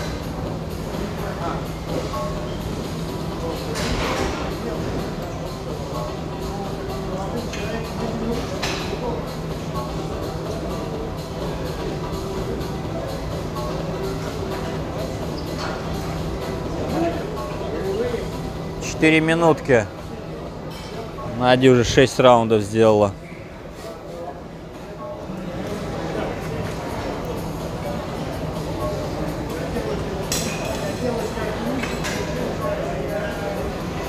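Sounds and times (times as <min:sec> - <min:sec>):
background music: 0:00.0 - 0:34.0
indistinct chatter: 0:19.7 - 0:34.0.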